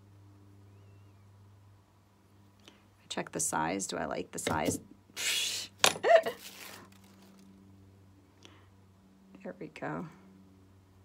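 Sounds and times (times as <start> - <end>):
low steady hum: 0.0 - 11.0
woman laughing breathily: 6.0 - 6.4.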